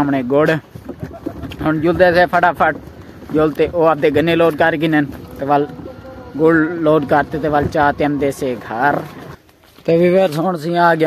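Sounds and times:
man speaking: 0:01.6 - 0:11.0.

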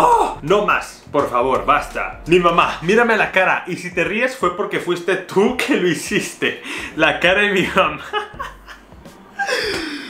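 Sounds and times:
man laughing: 0:07.6 - 0:10.0.

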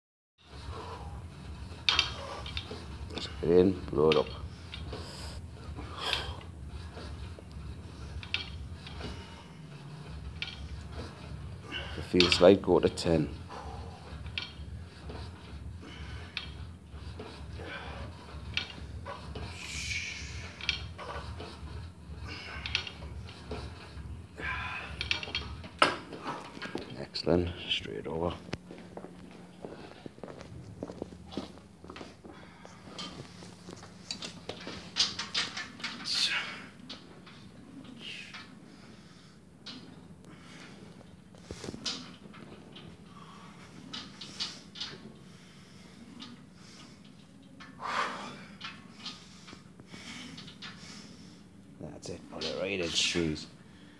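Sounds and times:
gym machine clacks and rustles: 0:00.4 - 0:53.9
room noise hum: 0:00.4 - 0:53.9
footsteps on rubber floor: 0:28.6 - 0:33.9.

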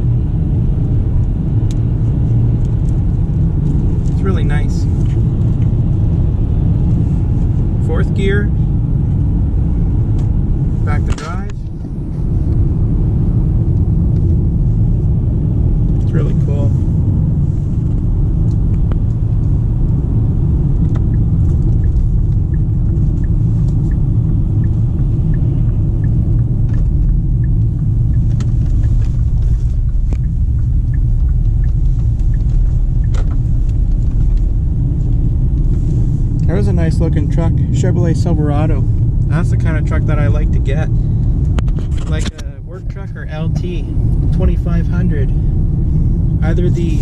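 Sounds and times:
engine and road noise in car: 0:00.0 - 0:47.0.

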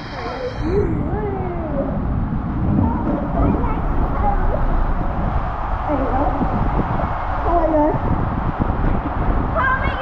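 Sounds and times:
rushing water rumble: 0:00.0 - 0:10.0.

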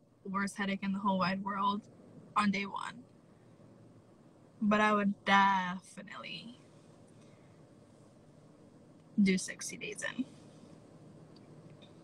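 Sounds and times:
faint background hiss: 0:00.0 - 0:12.0
woman's voice: 0:00.3 - 0:01.8, 0:02.4 - 0:03.0, 0:04.6 - 0:06.6, 0:09.2 - 0:10.4.

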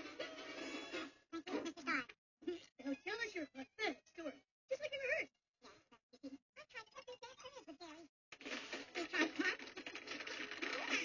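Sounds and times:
squeaky cartoon voice chattering: 0:06.6 - 0:08.1.

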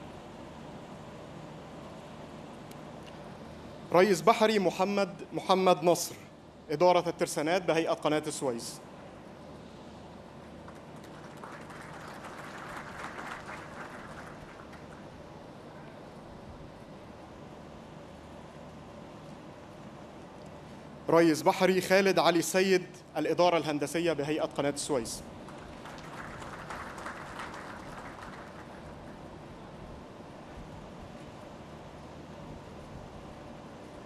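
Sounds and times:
low background rumble: 0:00.0 - 0:34.0
audience applauding: 0:10.7 - 0:15.2, 0:25.4 - 0:29.4.

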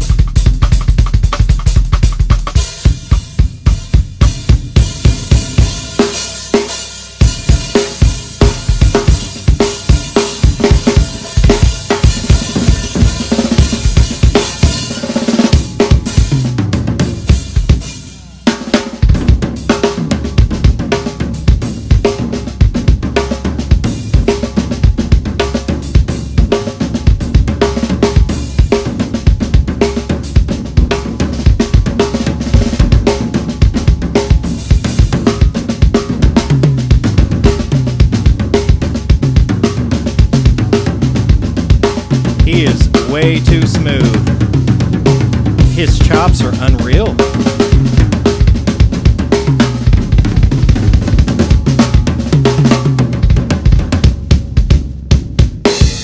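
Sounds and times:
cymbals and hi-hat: 0:00.0 - 0:56.0
drum kit playing fast: 0:00.0 - 0:56.0.

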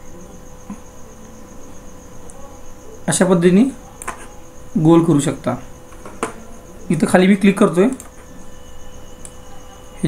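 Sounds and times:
faint low hum: 0:00.0 - 0:10.0
high-pitched pulsing trill: 0:06.4 - 0:10.0.

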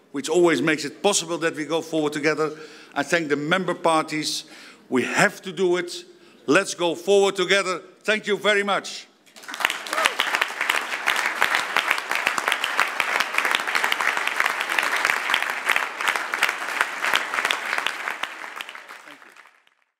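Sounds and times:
crowd applauding: 0:09.3 - 0:19.9.

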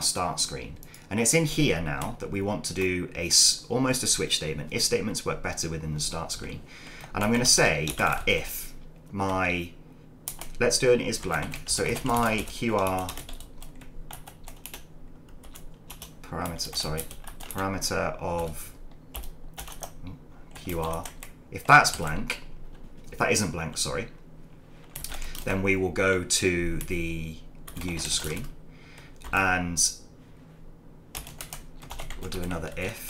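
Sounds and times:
typing on computer keyboard: 0:11.2 - 0:14.8, 0:15.4 - 0:17.6, 0:19.2 - 0:20.0, 0:31.2 - 0:32.7.

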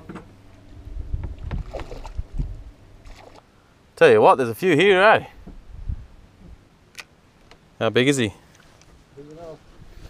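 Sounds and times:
knocks and rumbles on boat: 0:01.1 - 0:02.6
water splashing against hull: 0:01.2 - 0:03.5.

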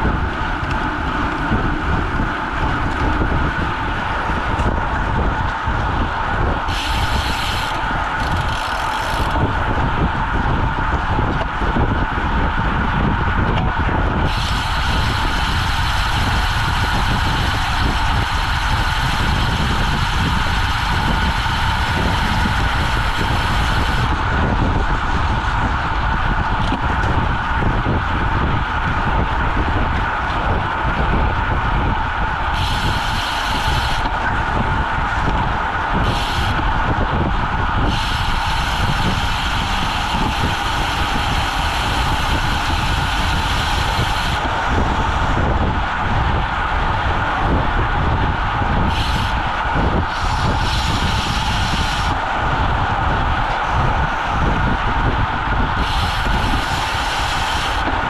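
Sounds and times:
tyres rumbling on asphalt: 0:00.0 - 0:58.0
wind rush on microphone: 0:00.0 - 0:58.0.

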